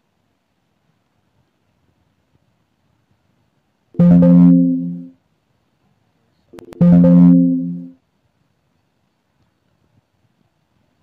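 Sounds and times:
plucked string note: 0:04.0 - 0:05.1, 0:06.6 - 0:07.9.

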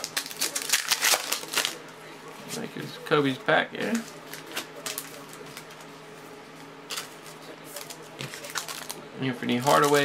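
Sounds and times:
card wrappers clicking and rustling: 0:00.0 - 0:01.8, 0:03.9 - 0:05.9, 0:06.9 - 0:10.0.

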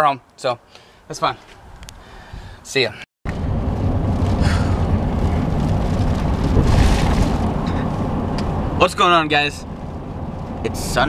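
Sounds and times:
car rumble inside cabin: 0:03.3 - 0:11.0.

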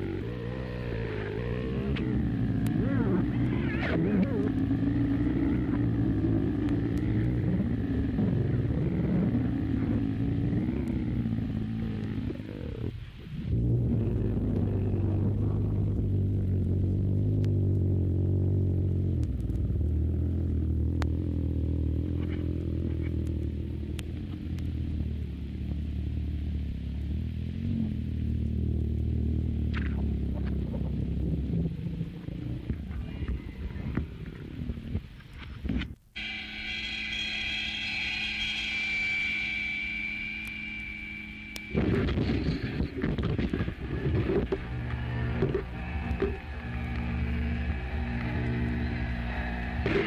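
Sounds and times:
low rumbling noise drone: 0:00.0 - 0:50.0
wavering tones: 0:36.2 - 0:50.0.

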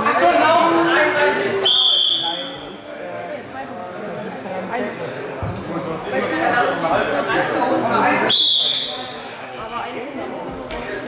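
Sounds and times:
voices in a hall: 0:00.0 - 0:11.0
referee whistle blast: 0:01.6 - 0:02.6, 0:08.3 - 0:09.2.

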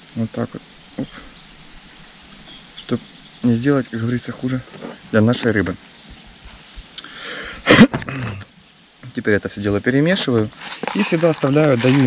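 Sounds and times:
faint bird chirps: 0:00.0 - 0:09.8
outdoor background noise: 0:00.0 - 0:12.0.

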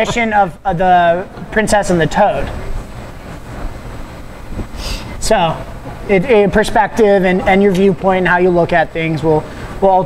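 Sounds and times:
person speaking: 0:00.0 - 0:02.8, 0:04.8 - 0:10.0
low room rumble: 0:00.0 - 0:10.0
short hiss: 0:04.6 - 0:05.2.

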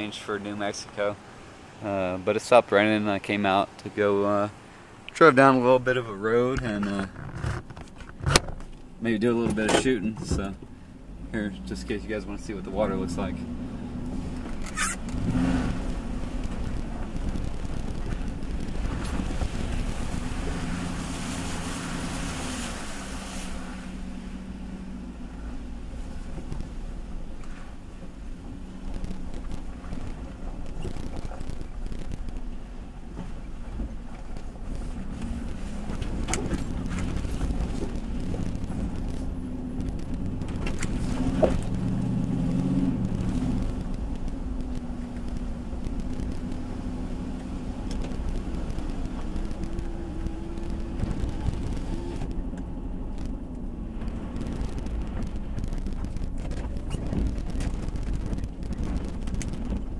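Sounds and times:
truck engine running: 0:08.1 - 0:59.9
splashing water: 0:12.1 - 0:59.9.

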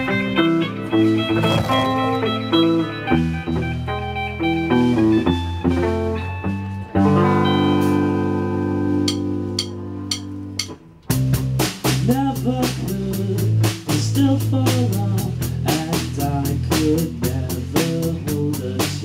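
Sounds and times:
drums and bass beat: 0:00.0 - 0:04.0, 0:08.8 - 0:19.0
guitars and keyboard chords: 0:00.0 - 0:19.0.

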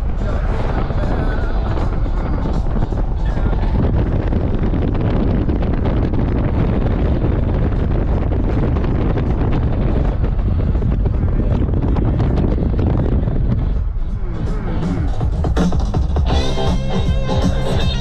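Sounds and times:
music playing: 0:00.0 - 0:05.2, 0:12.6 - 0:18.0
road noise: 0:00.0 - 0:18.0
wind buffeting microphone: 0:00.0 - 0:18.0.

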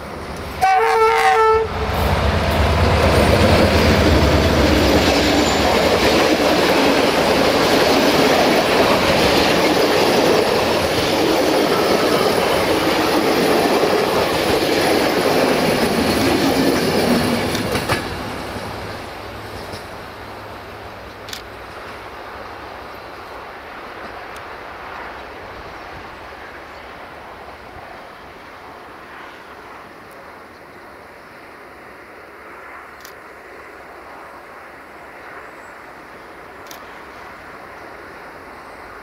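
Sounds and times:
train wheels rumbling on rails: 0:00.0 - 0:30.8
sharp clicks: 0:21.1 - 0:21.6, 0:36.6 - 0:36.9.

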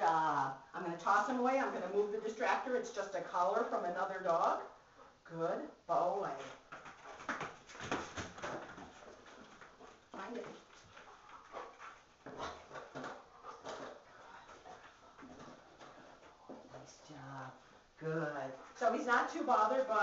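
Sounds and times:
rustling: 0:06.3 - 0:20.0
dog sniffing: 0:09.0 - 0:16.7.

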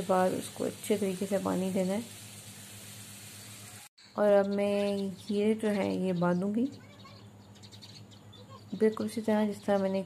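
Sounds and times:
hose water spraying: 0:00.0 - 0:03.9.

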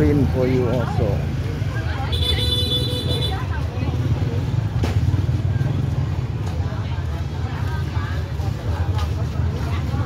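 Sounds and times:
motorbike engines rumbling: 0:00.0 - 0:10.0
people talking: 0:00.0 - 0:10.0.

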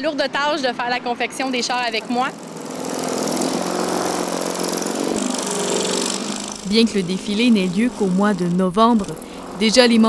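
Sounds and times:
electric saw cutting foam board: 0:01.7 - 0:10.0.

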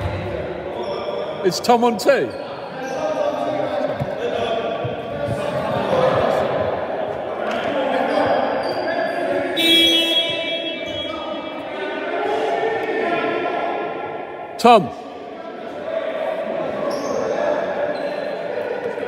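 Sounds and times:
players' voices: 0:00.0 - 0:19.0
high-pitched shoe squeal: 0:08.1 - 0:11.3, 0:16.8 - 0:18.4.

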